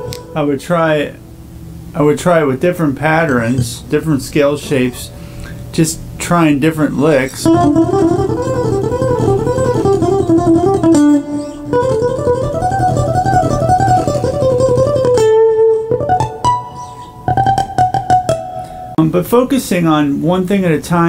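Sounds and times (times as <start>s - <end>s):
acoustic guitar picked notes: 0.0s - 19.6s.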